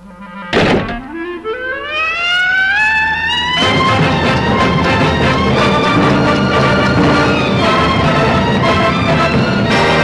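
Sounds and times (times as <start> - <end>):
orchestral music: 0.0 - 10.0
rising musical glide: 0.2 - 10.0
sudden thump: 0.6 - 1.2.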